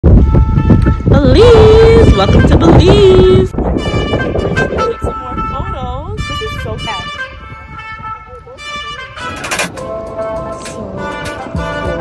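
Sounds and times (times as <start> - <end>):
background music: 9.2 - 12.0.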